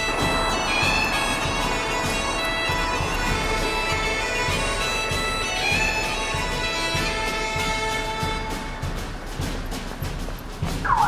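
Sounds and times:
bagpipe melody with drones: 0.0s - 9.7s
low drum beat: 0.0s - 11.0s.

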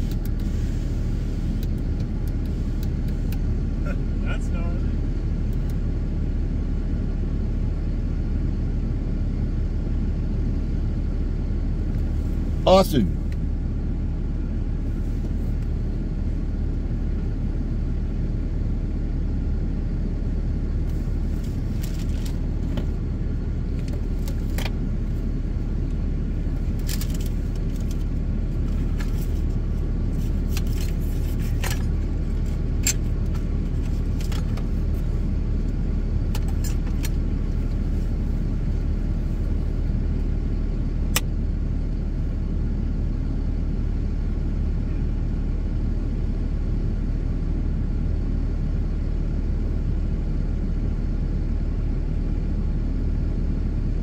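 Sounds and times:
vehicle engine idling: 0.0s - 54.0s.

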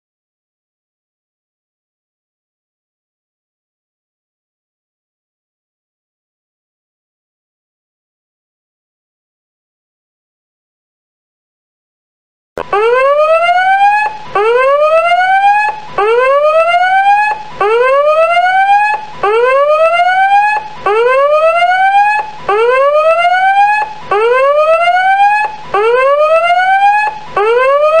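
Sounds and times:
whooping siren alarm tone: 12.6s - 28.0s.

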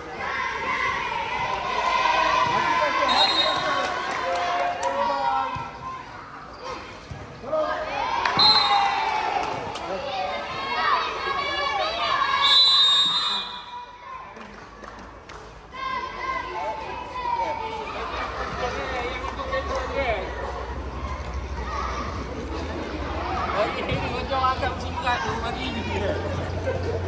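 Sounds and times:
children shouting and cheering: 0.0s - 6.9s, 7.5s - 14.5s, 15.6s - 27.0s.

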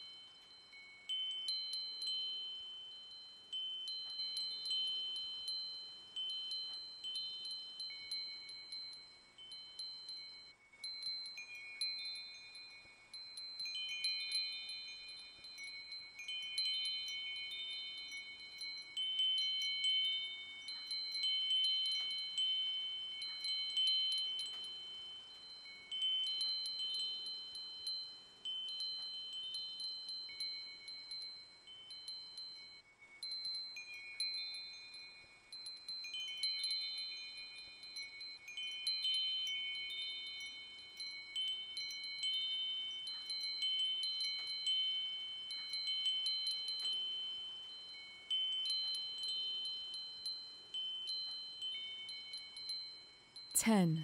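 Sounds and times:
wind chimes ringing: 0.0s - 54.0s.

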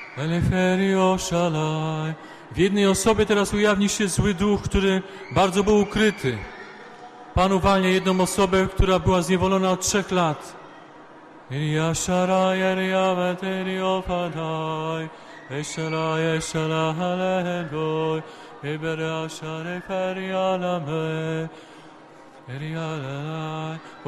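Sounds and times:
man chanting wordless syllables: 0.2s - 6.4s, 7.4s - 10.5s, 11.5s - 21.5s, 22.5s - 24.0s.

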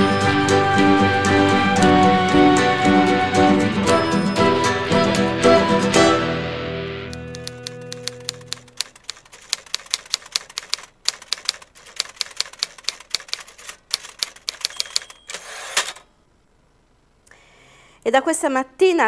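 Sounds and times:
music: 0.0s - 8.6s
typewriter keys striking: 7.2s - 16.0s
typewriter bell ring: 13.2s - 16.0s.

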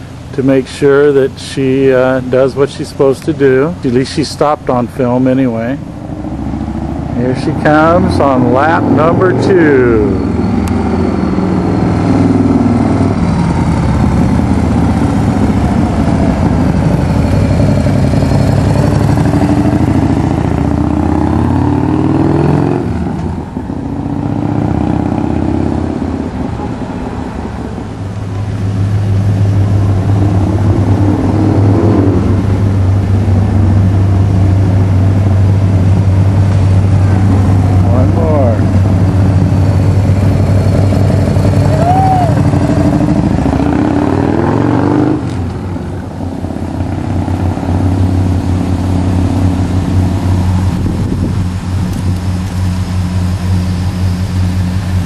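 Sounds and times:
steady low engine hum: 0.0s - 55.0s
motorcycle engine passing: 5.2s - 55.0s.

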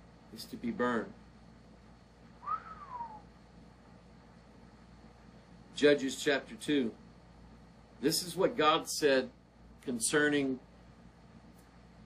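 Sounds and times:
whistle-like sliding note: 2.4s - 3.2s.

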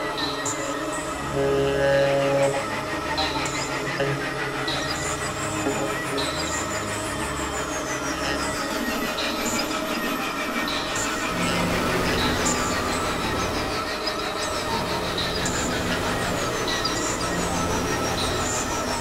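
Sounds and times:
low droning synth pulses: 1.0s - 8.8s
high synth chirps: 5.6s - 6.7s.

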